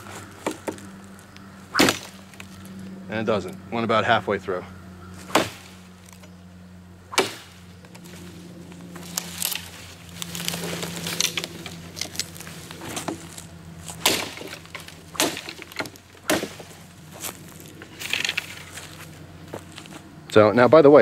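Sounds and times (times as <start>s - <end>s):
wood cracking and splitting: 0.0s - 2.7s, 5.2s - 6.3s, 7.1s - 20.0s.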